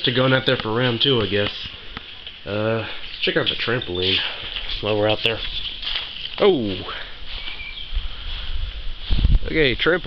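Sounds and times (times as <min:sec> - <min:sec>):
footsteps crunching in snow and leaves: 0:00.0 - 0:10.0.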